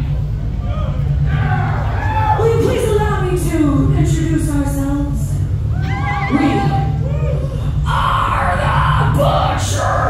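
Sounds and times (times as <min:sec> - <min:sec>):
steady low rumble: 0:00.0 - 0:10.0
high wavering cry: 0:05.7 - 0:10.0.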